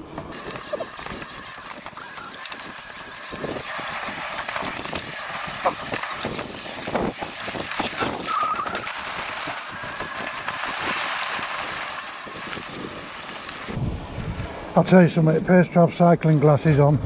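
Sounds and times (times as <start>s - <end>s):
grass swishing against bike: 0.3s - 13.8s.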